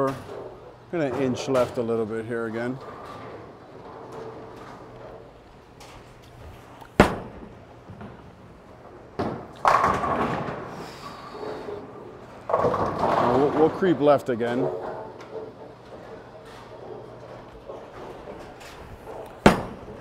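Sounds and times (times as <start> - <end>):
bowling pins crashing: 7.0 - 20.0
bowling ball thud on lane: 9.2 - 10.7, 19.1 - 20.0.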